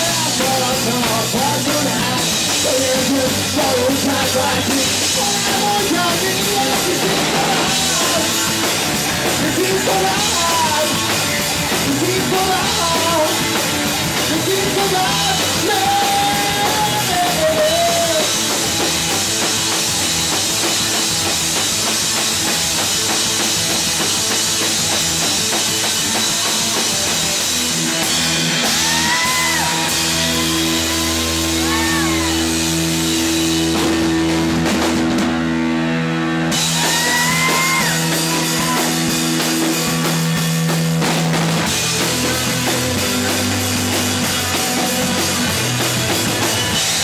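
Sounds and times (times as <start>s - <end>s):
distorted electric guitar: 0.0s - 47.0s
drum kit: 0.0s - 47.0s.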